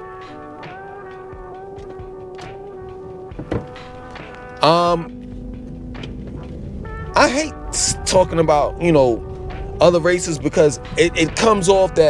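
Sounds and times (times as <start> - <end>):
car cabin low rumble: 1.7 - 12.0.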